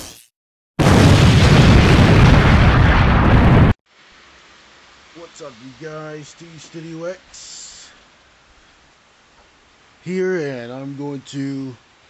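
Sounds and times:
rumbling explosion sound effect: 0.8 - 3.8.

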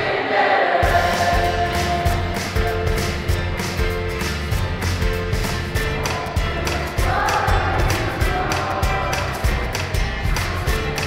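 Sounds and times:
youth choir singing: 0.0 - 3.3, 5.8 - 11.0
accompaniment with steady beat: 0.8 - 11.0.

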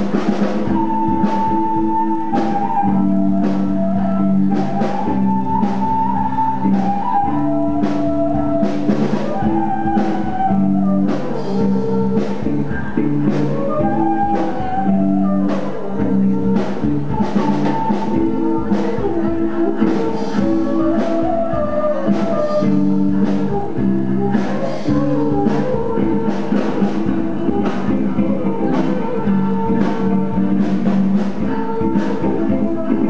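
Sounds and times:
drum kit beat: 0.0 - 33.0
electric guitars: 0.0 - 33.0
flute melody: 0.0 - 33.0.

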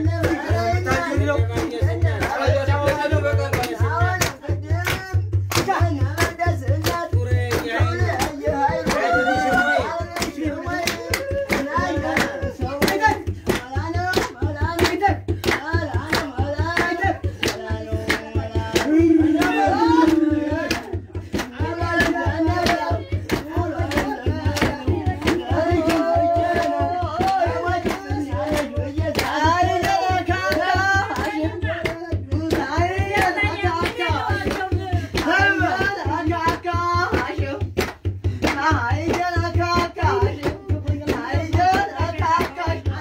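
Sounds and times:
low pulsing beat: 0.0 - 37.7
group of people singing: 0.0 - 43.0
sharp handclaps: 0.2 - 43.0.

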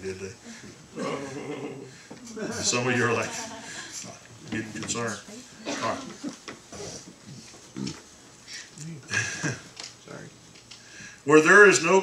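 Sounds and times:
people chuckling and murmuring: 0.0 - 4.2, 5.3 - 7.5.

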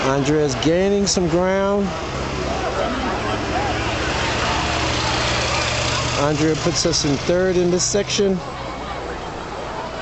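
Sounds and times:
rushing background noise: 0.0 - 10.0.

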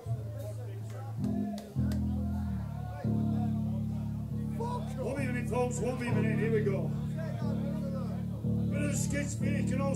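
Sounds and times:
electric guitar and bass: 0.0 - 9.9
people talking: 0.0 - 9.9.

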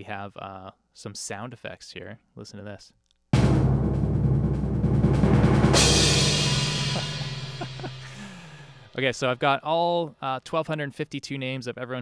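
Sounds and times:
cymbal crash ringing: 3.4 - 8.8
drum roll: 3.4 - 8.9.

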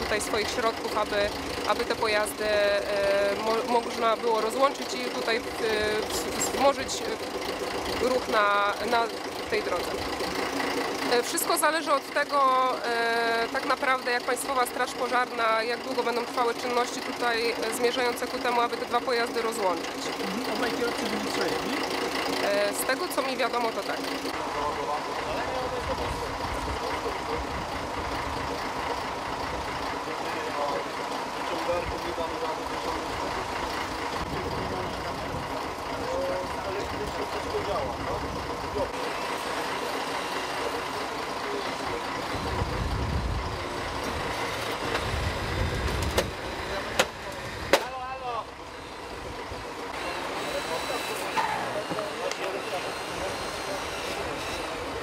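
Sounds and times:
heavy vehicle engine running: 0.0 - 55.0
voices talking: 0.0 - 55.0.

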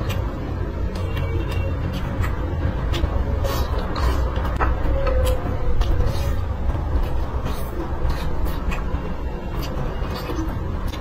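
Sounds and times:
close chewing: 0.0 - 11.0
low rumble: 0.0 - 11.0.

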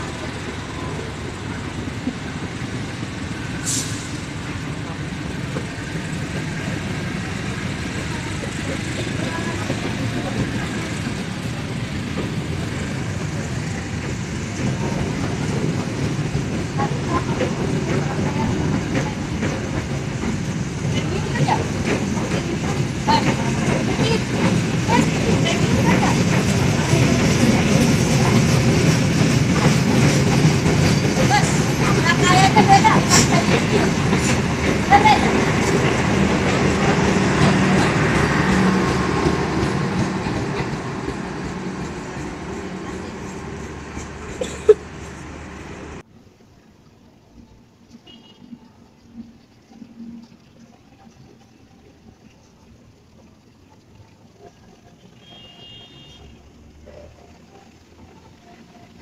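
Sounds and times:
train coaches rolling past: 0.0 - 59.0
wheels clicking over rail joints: 0.0 - 59.0.

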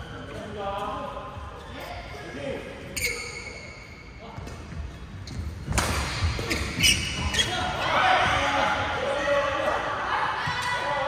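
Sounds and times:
shoes squeaking on court: 0.0 - 8.4
rackets hitting shuttlecock: 5.3 - 7.4.

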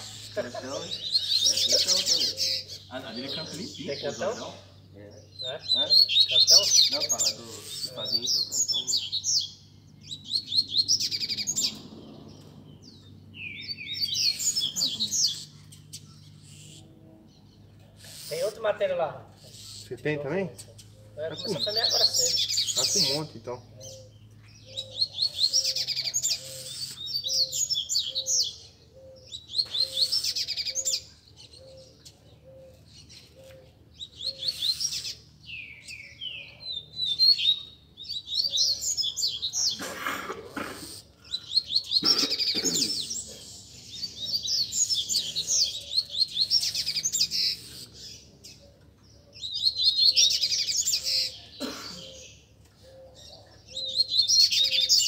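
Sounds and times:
birds twittering song: 0.0 - 55.0.

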